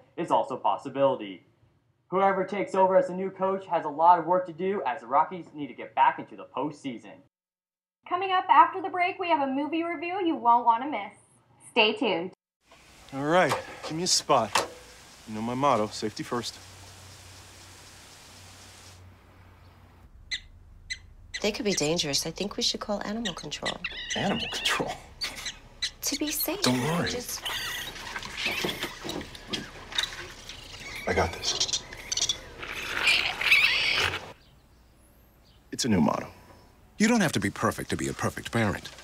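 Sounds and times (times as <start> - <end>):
outdoor ambience hiss: 12.0 - 39.0
small animal squeaks: 23.0 - 34.4
shrill screech: 32.2 - 34.4.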